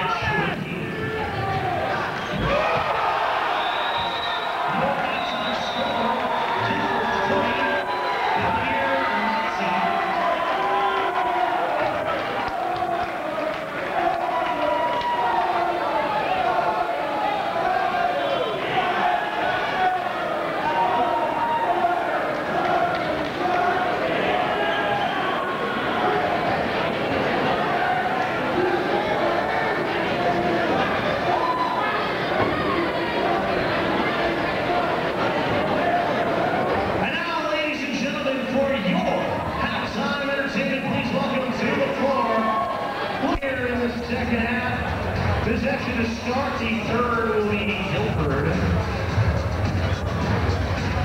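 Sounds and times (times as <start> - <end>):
crowd chatter: 0.0 - 51.0.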